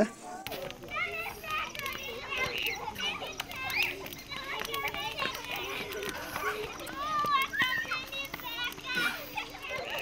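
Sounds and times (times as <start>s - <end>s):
children chattering and calling: 0.0s - 10.0s
faint clicks: 0.4s - 10.0s.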